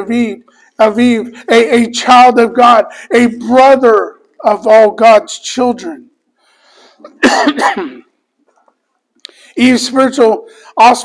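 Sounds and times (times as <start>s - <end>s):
man clearing his throat: 7.0s - 8.2s.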